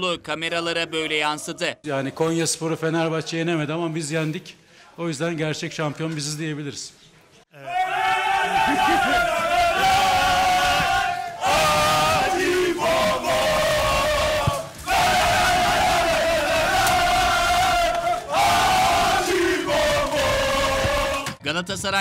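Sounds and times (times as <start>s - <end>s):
group chanting and shouting: 7.6s - 21.4s.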